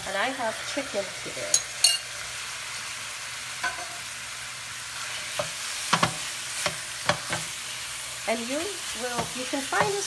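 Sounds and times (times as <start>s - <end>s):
food sizzling in oil: 0.0s - 10.0s
wooden spoon knocking on pan: 5.4s - 7.5s, 9.1s - 10.0s.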